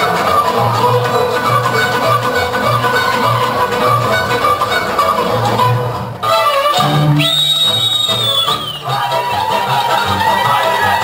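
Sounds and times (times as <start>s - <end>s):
folk dance music: 0.0s - 11.0s
long high whistled note: 6.8s - 8.9s.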